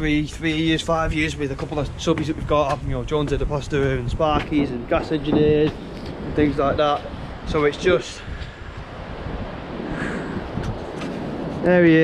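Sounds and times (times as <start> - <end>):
wind blowing on microphone: 0.0 - 12.0.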